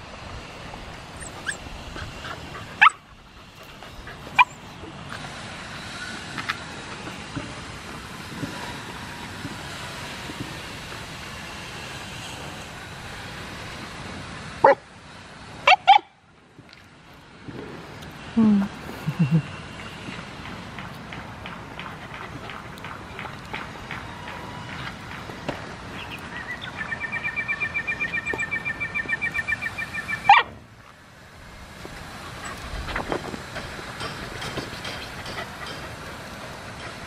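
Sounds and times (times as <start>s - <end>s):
dogs yipping: 1.1s - 5.0s, 15.6s - 16.1s, 26.1s - 30.6s, 32.3s - 37.0s.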